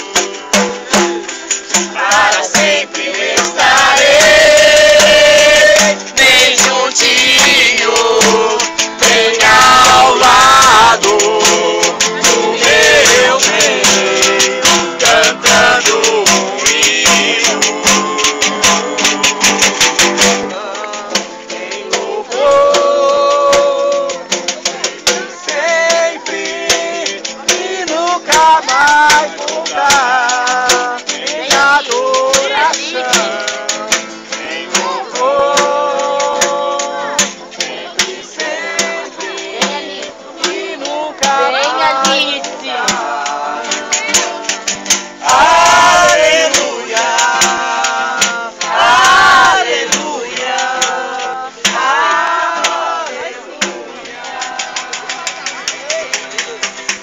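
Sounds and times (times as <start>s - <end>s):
voices singing gospel song: 0.0s - 55.8s.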